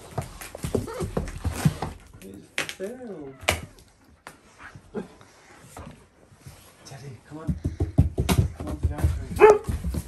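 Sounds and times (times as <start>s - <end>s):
scuffs and knocks on cardboard: 7.3s - 10.0s.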